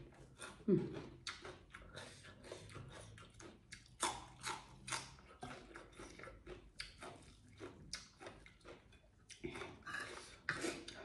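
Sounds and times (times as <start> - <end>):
crisp crunching of chewing: 0.0 - 11.0.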